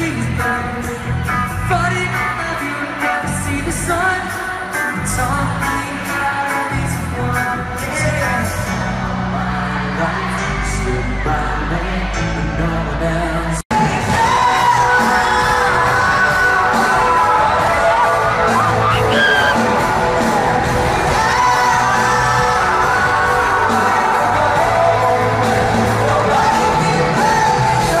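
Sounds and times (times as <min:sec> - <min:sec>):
man singing into microphone: 0:00.0 - 0:20.3, 0:21.0 - 0:28.0
pop band playing: 0:00.0 - 0:28.0
audience cheering and screaming: 0:13.8 - 0:28.0.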